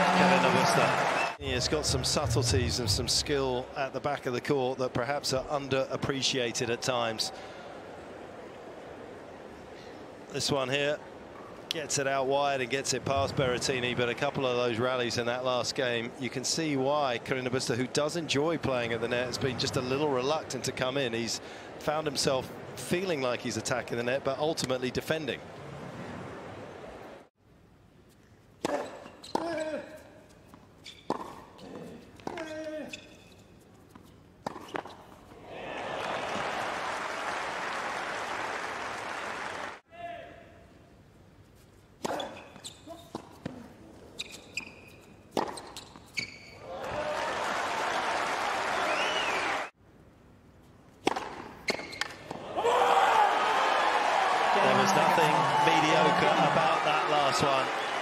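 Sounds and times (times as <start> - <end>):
crowd applauding and cheering: 0.0 - 3.7, 35.5 - 39.8, 46.7 - 49.7, 52.6 - 58.0
racket hitting tennis ball: 31.1 - 31.5, 45.3 - 45.8, 51.0 - 52.4
ball bouncing on hard court: 51.0 - 52.2.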